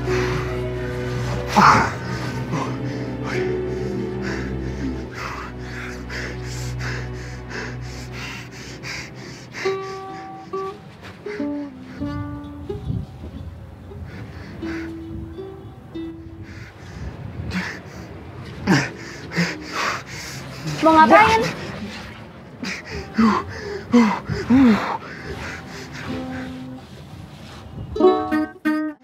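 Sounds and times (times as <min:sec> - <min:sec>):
plucked ukulele melody: 0:00.0 - 0:05.7, 0:09.6 - 0:17.2, 0:28.0 - 0:29.0
film music with steady beat: 0:00.0 - 0:11.8.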